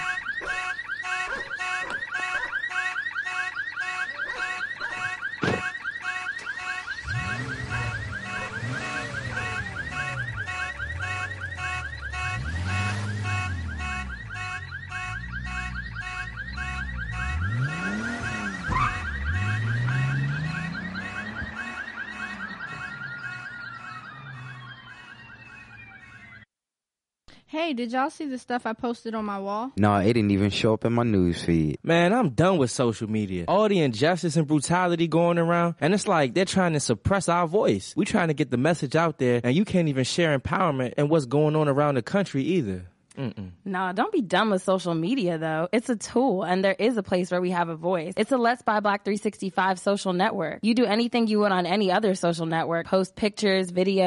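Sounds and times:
car alarm: 0.0s - 26.5s.

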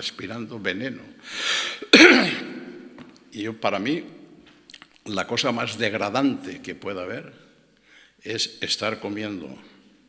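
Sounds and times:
noisy breath in: 1.2s - 1.9s, 7.8s - 8.2s
man clearing his throat: 1.8s - 2.8s
man coughing: 1.8s - 2.8s.

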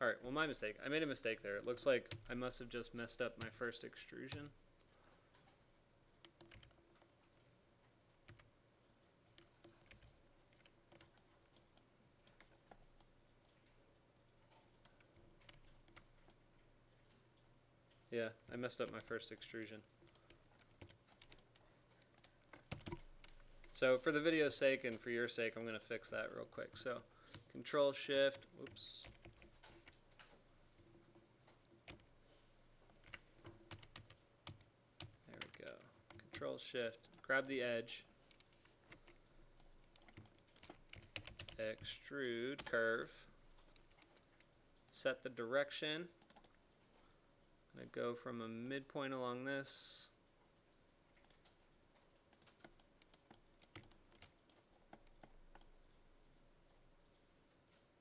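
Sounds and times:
faint keyboard keystrokes: 1.6s - 25.1s, 25.7s - 45.0s, 46.2s - 47.6s, 50.6s - 58.0s
keyboard key presses: 19.7s - 23.8s, 38.3s - 41.9s.

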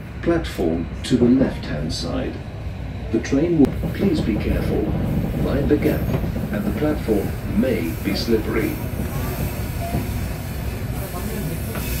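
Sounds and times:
train rumbling on rails: 0.0s - 12.0s
faint voices: 0.8s - 12.0s.

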